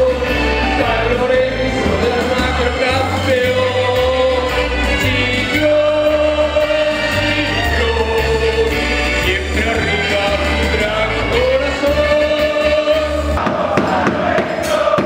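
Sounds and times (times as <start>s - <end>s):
live band playing: 0.0s - 13.4s
man singing through microphone: 0.0s - 15.0s.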